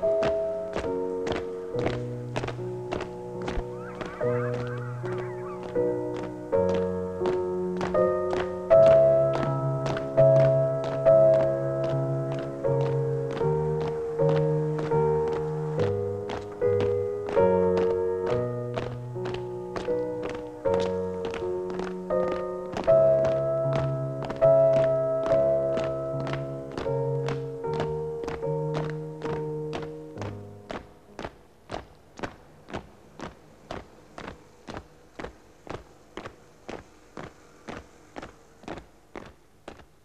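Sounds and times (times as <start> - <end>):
marching feet: 0.0 - 40.0.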